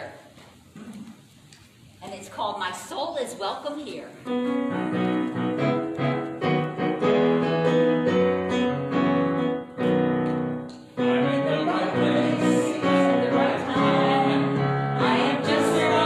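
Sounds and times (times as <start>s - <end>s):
piano chords and melody: 4.3s - 16.0s
congregation singing: 11.0s - 16.0s.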